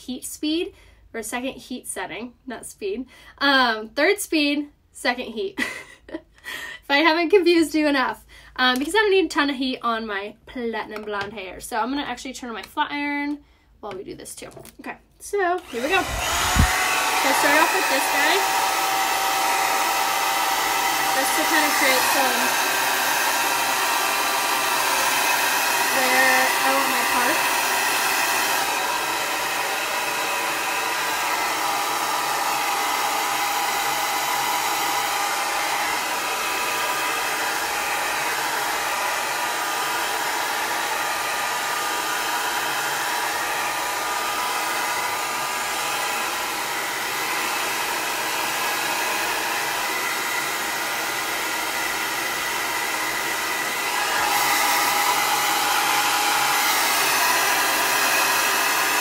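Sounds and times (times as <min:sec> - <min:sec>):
hair dryer running: 0:15.6 - 0:59.0.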